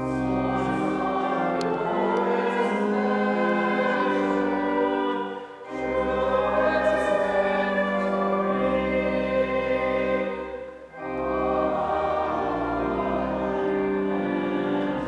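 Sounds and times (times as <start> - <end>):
congregation singing a hymn: 0.0 - 15.0
pipe organ: 0.0 - 15.0.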